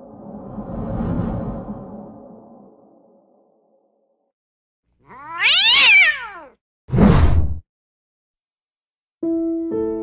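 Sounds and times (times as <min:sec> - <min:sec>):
cat meowing: 0:05.0 - 0:06.6.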